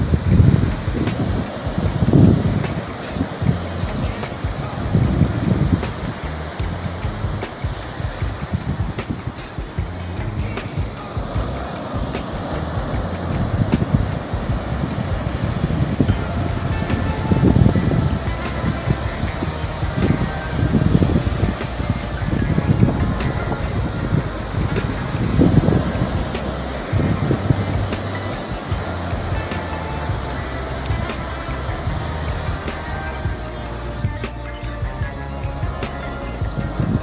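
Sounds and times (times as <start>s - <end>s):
faint music: 0.0s - 37.0s
wind buffeting microphone: 0.0s - 37.0s.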